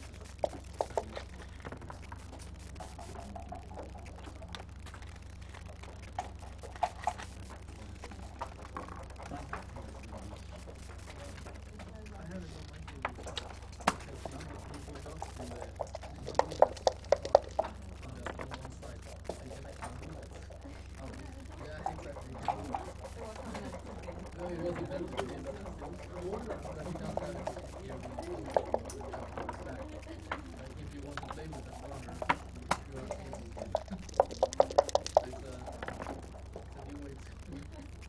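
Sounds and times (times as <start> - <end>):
low hum: 0.0 - 38.0
checkers clicking on board: 12.8 - 20.6, 21.8 - 37.3
dice rattling in cup: 13.1 - 20.6, 21.8 - 37.3.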